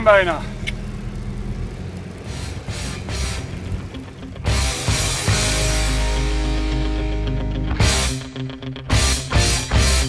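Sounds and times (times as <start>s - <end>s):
car engine drone inside cabin: 0.0s - 9.0s
rock music with guitar: 2.3s - 10.0s.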